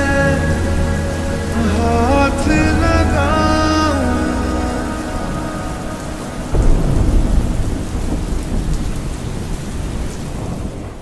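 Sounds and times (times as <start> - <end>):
music: 0.0 - 7.6
deep rumbling boom: 0.0 - 11.0
rushing rain-like noise: 0.0 - 11.0.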